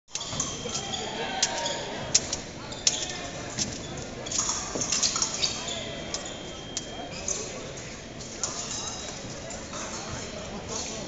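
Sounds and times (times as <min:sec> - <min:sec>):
fencing footwork and blade clacks: 0:00.1 - 0:10.1
voices in a hall: 0:00.1 - 0:11.0.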